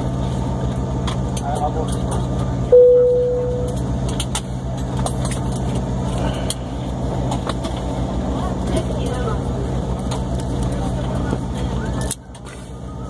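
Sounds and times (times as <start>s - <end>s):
aircraft cabin hum and rush: 0.0s - 13.0s.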